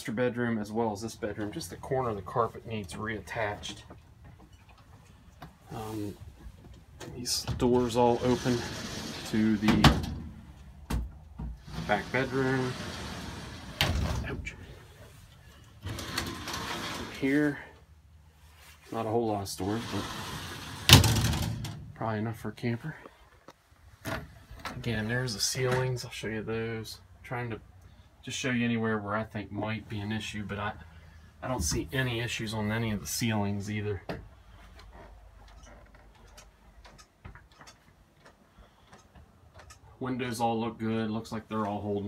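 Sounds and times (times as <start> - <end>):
room hum: 0.0 - 42.0
light clicks and taps: 34.8 - 39.9.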